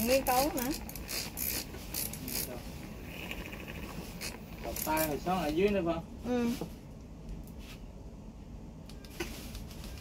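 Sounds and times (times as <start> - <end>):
milk frother whirring: 3.0 - 5.2.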